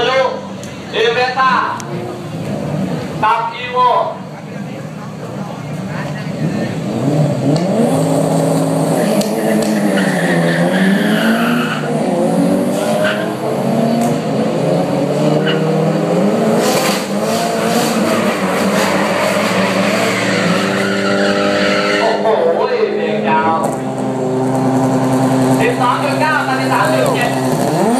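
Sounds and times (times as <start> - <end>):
racing car engines revving: 0.0 - 27.9.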